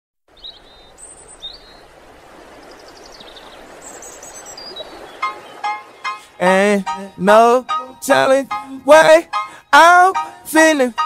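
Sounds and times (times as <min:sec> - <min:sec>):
bird chirps and trills: 0:00.3 - 0:06.4.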